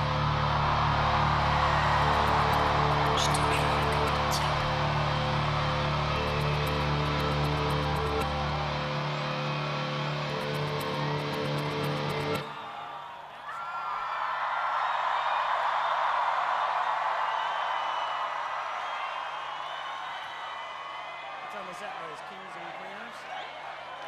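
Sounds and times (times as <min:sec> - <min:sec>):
crowd cheering and screaming: 0:00.0 - 0:24.0.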